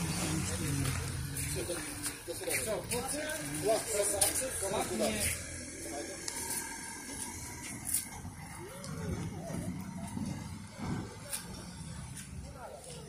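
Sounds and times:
faint voices: 0:00.0 - 0:13.0
vehicle driving along road: 0:00.0 - 0:13.0.

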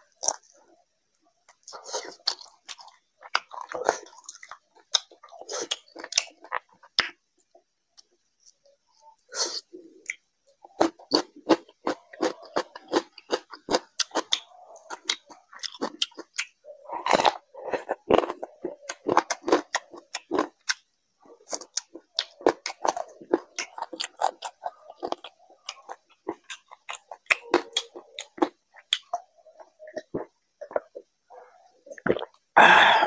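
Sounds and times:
person chewing food: 0:00.0 - 0:00.8, 0:01.4 - 0:33.0.

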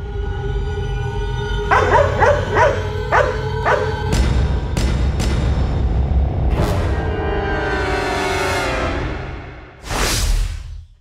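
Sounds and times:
low droning music: 0:00.0 - 0:09.8
dog barking: 0:01.7 - 0:04.1.

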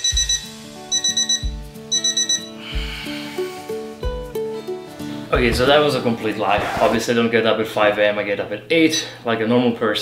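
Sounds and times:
alarm clock beeping: 0:00.0 - 0:02.6.

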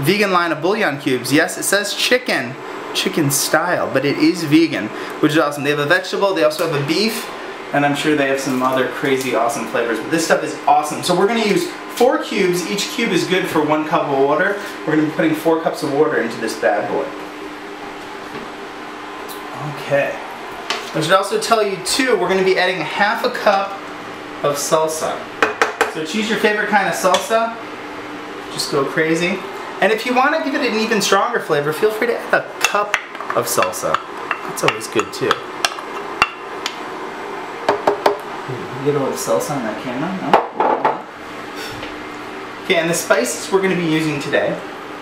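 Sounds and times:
faint hum: 0:00.0 - 0:45.0.

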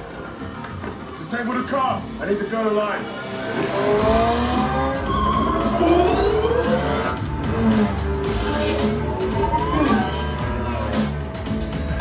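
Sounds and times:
action film score music: 0:00.0 - 0:12.0.

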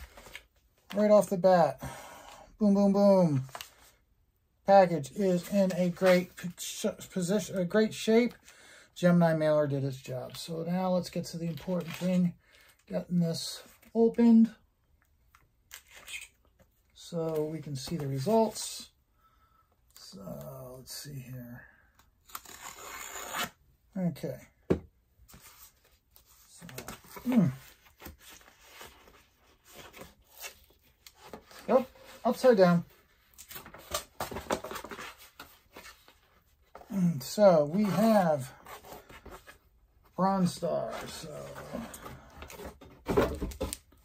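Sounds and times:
cardboard scratching and tearing: 0:22.4 - 0:23.6.

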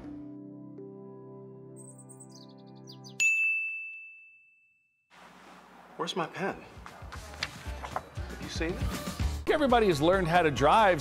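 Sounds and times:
background music: 0:00.0 - 0:03.2, 0:06.0 - 0:11.0
bright bell ding: 0:03.2 - 0:04.8.

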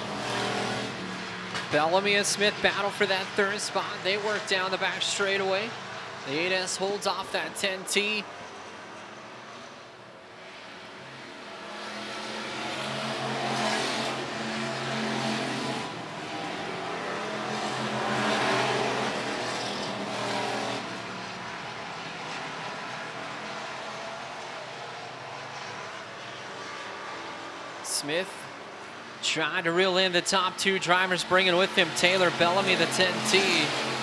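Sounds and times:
race car engines: 0:00.0 - 0:34.0.

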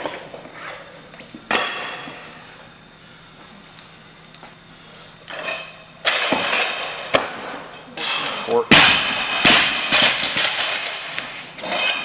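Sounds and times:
metallic clanks of bar and plates: 0:08.0 - 0:12.0.

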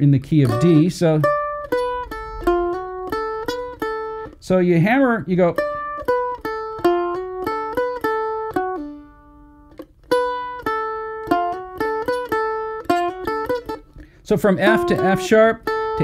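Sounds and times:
mandolin picking a lick: 0:00.0 - 0:16.0.

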